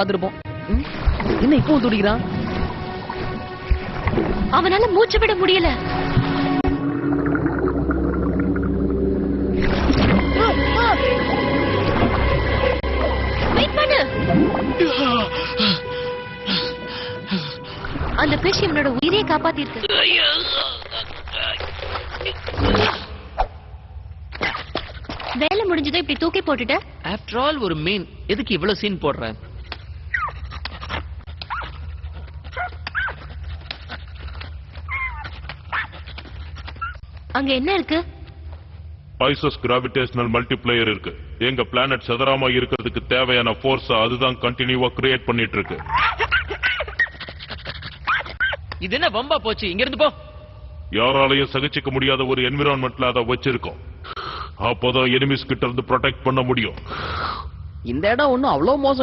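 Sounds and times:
low underwater hum: 0:00.8 - 0:19.1
low rumble: 0:03.4 - 0:14.8.

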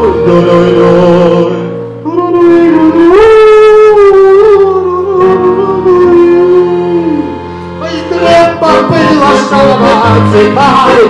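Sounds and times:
piano accordion: 0:00.0 - 0:11.0.

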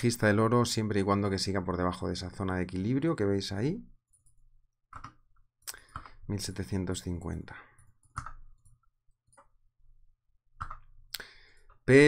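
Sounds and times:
computer mouse clicks: 0:04.1 - 0:06.3, 0:07.8 - 0:09.5, 0:10.6 - 0:11.0.

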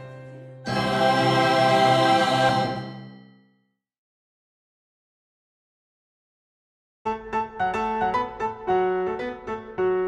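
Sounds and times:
choir singing held chord: 0:00.6 - 0:03.1.

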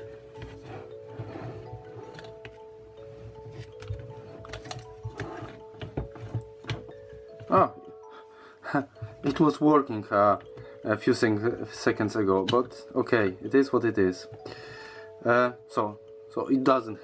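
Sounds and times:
background music sustained notes: 0:00.0 - 0:17.0.

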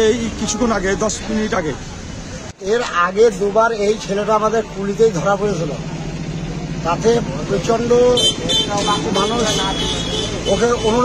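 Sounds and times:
man talking: 0:00.0 - 0:01.9, 0:02.6 - 0:05.9
street traffic: 0:00.0 - 0:11.0.

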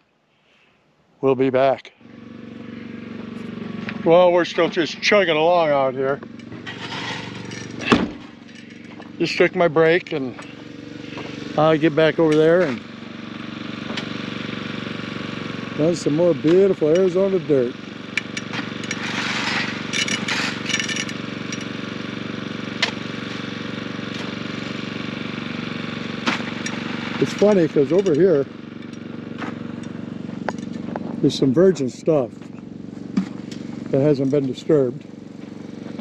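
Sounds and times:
small gasoline engine chugging: 0:01.9 - 0:36.0.

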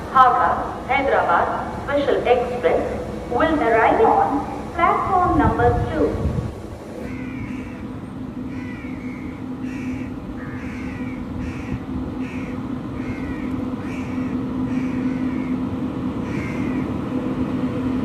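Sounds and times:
electric locomotive humming: 0:00.0 - 0:18.0
crows cawing: 0:07.0 - 0:15.6, 0:16.2 - 0:16.9.

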